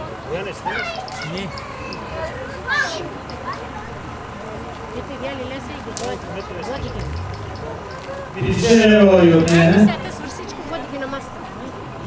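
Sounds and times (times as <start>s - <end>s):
people chattering: 0.0s - 12.0s
low hum: 6.4s - 10.1s.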